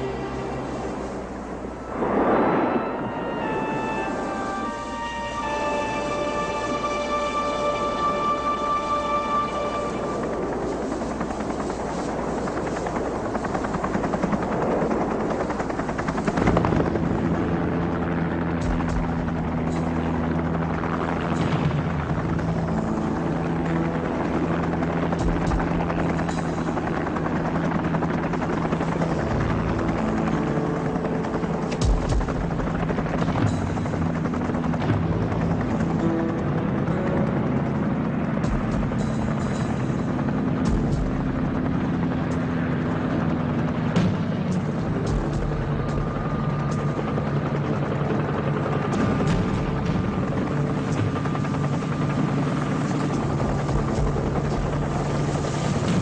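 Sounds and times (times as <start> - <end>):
helicopter running: 0.0 - 56.0
music of low sustained notes: 0.0 - 56.0.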